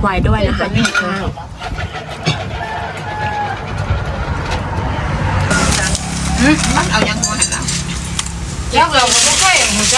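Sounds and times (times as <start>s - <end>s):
vehicle engine rumbling: 0.0s - 9.9s.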